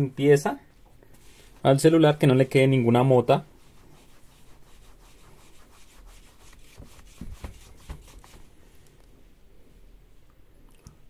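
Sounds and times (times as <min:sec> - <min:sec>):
cloth wiping glass screen: 0:01.2 - 0:02.6, 0:03.4 - 0:08.6.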